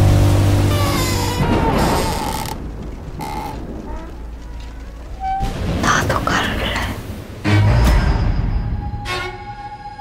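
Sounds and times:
faint thin creaking tones: 0.7s - 5.4s.

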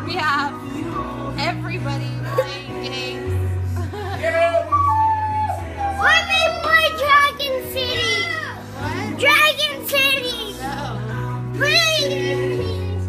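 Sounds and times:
music playing: 0.0s - 13.0s
children shouting and singing: 5.4s - 13.0s.

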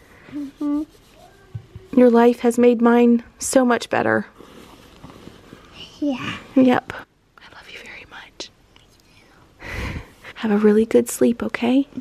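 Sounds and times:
soft breathy whispering: 5.7s - 6.2s, 7.4s - 9.6s.

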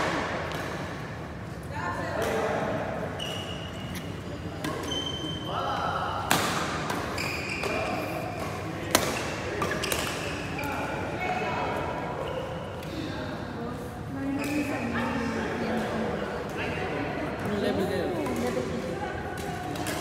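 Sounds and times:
court shoes squeaking: 3.1s - 5.6s, 6.4s - 11.4s, 12.2s - 12.9s, 14.2s - 15.4s
rackets hitting shuttlecock: 8.4s - 10.2s.

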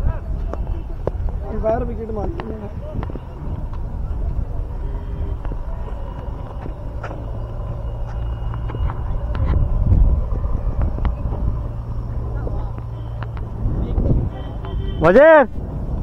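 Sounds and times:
wind noise on microphone: 0.0s - 16.0s.

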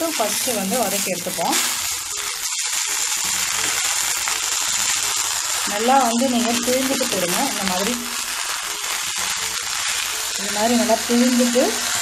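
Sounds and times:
leaves sizzling in oil: 0.0s - 12.0s.

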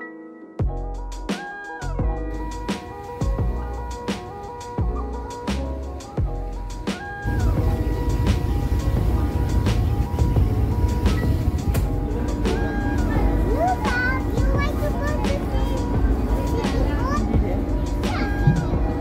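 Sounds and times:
background music: 0.0s - 19.0s
ferry engine rumble: 2.2s - 19.0s
voices: 6.9s - 19.0s.

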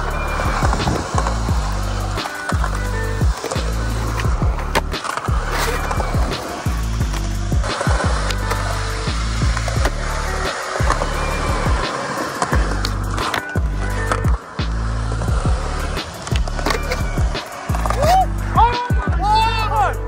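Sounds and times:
music with heavy bass: 0.0s - 20.0s
skateboard wheels on concrete: 0.0s - 20.0s
skateboard clacks: 0.1s - 19.1s.

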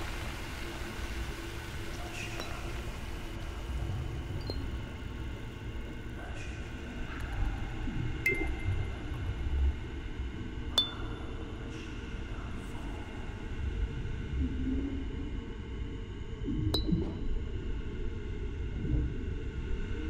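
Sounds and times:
sharp high pings: 10.8s - 11.4s.

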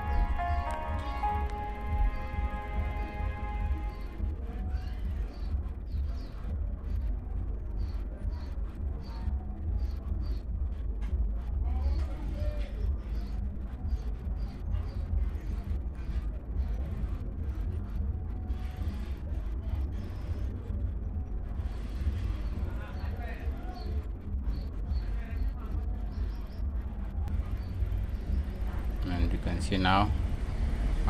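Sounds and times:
low background rumble: 0.0s - 31.0s.

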